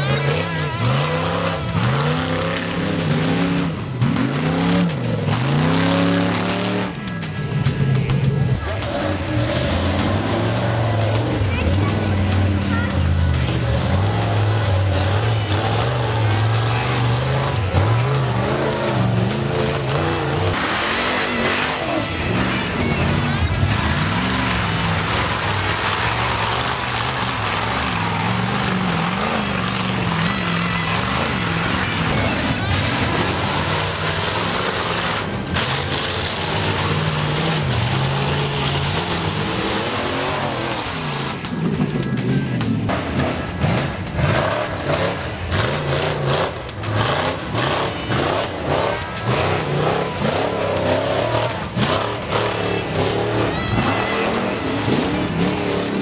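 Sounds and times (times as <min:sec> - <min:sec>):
buggy engine revving hard: 0:00.0 - 0:56.0
music track: 0:00.0 - 0:56.0.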